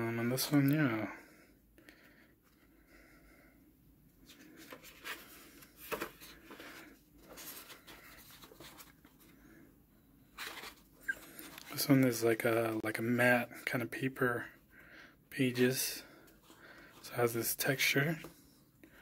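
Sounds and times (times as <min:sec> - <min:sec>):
paper pages rustling: 0:04.2 - 0:09.4, 0:10.3 - 0:11.8
paper crackle: 0:10.4 - 0:11.8.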